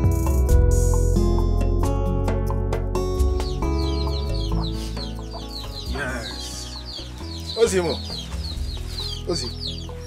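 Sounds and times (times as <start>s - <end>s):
background music: 0.0s - 10.0s
chickens clucking: 3.2s - 10.0s.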